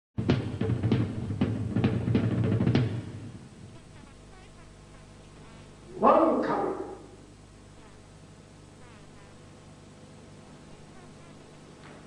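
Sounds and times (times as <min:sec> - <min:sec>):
low electrical hum: 0:00.2 - 0:12.0
faint hiss: 0:00.4 - 0:12.0.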